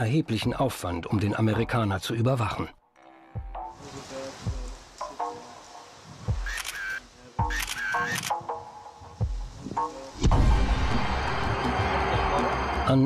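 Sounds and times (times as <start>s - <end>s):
rapid camera shutter clicks: 6.4s - 8.4s
tense music with low hits: 10.2s - 12.9s.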